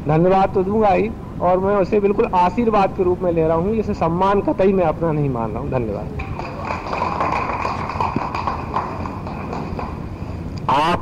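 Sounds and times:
audience applauding: 6.2 - 10.2.

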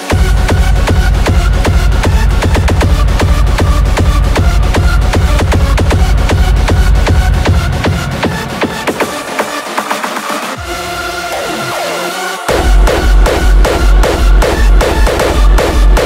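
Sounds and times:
heavy kick drum beat: 0.0 - 9.2, 12.5 - 16.0
synth lead: 10.6 - 16.0.

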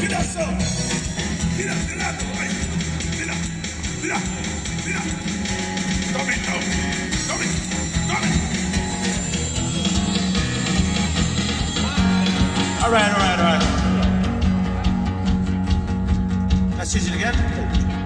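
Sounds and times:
live rock band music: 0.0 - 18.0
strong bass line: 0.0 - 18.0.

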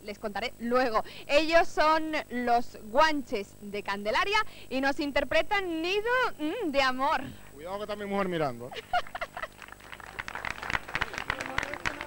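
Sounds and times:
people laughing: 8.7 - 12.0
people talking: 10.9 - 12.0.

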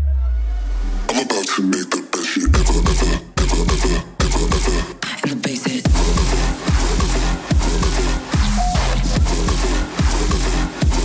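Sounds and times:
electronic dance music: 0.2 - 11.0.

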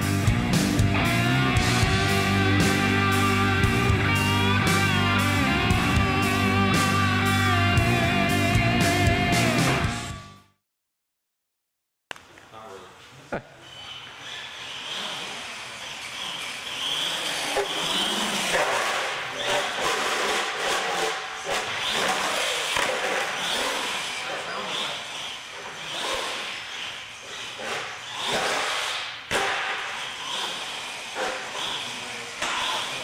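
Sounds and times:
toy truck motor and tyres rushing: 13.6 - 33.0.

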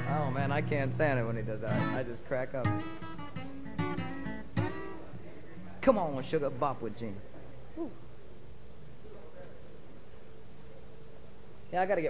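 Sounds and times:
acoustic guitar strummed: 0.0 - 5.2.

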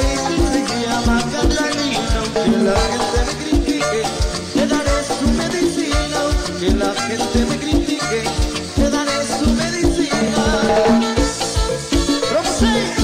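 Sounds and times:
salsa band playing: 0.0 - 13.0
timbales and congas: 0.0 - 13.0.

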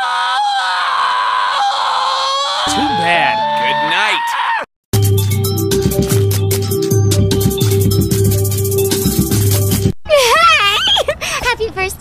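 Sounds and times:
cartoon character high-pitched scream: 0.0 - 4.7.

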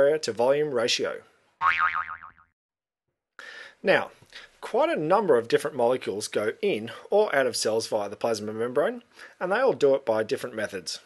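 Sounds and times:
springy boing: 1.6 - 2.6.

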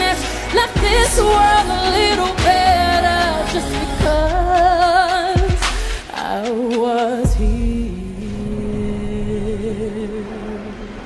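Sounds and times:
soft instrumental backing: 0.0 - 7.9
woman singing pop ballad: 0.0 - 11.0.

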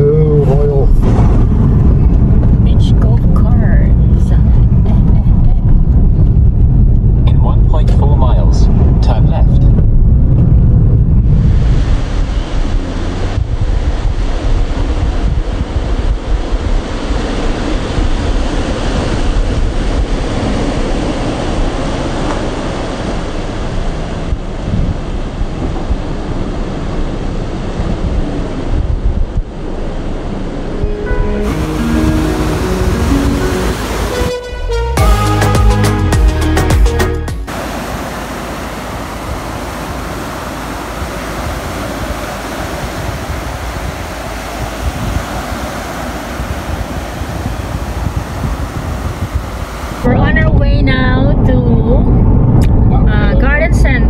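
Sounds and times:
wind buffeting microphone: 0.0 - 34.2, 37.4 - 54.0
car road and engine rumble: 0.0 - 54.0
waves washing onto beach: 11.3 - 34.4, 37.4 - 50.8
background music: 30.7 - 37.5.

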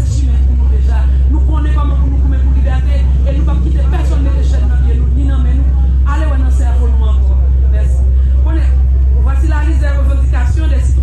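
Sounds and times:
steady low hum: 0.0 - 11.0
woman speaking into microphone: 0.0 - 11.0.

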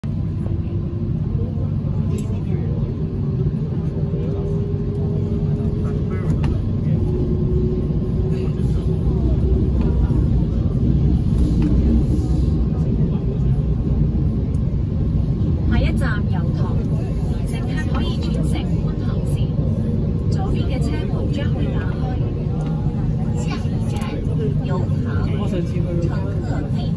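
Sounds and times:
faint train whine: 0.0 - 26.9
train cabin rumble: 0.0 - 26.9.

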